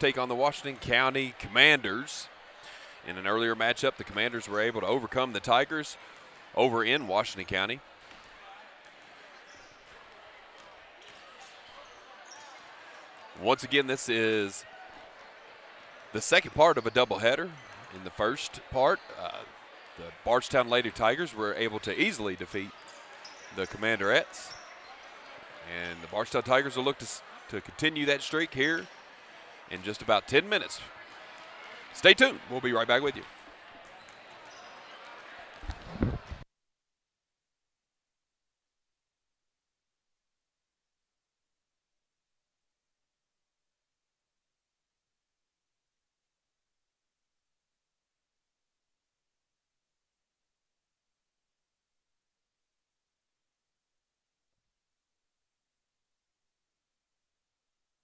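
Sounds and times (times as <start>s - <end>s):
crowd hubbub: 0.0s - 36.4s.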